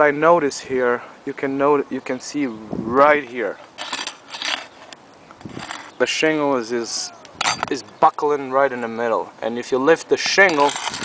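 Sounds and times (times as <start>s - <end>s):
metal tool scraping shingles: 3.7s - 6.0s, 10.2s - 11.0s.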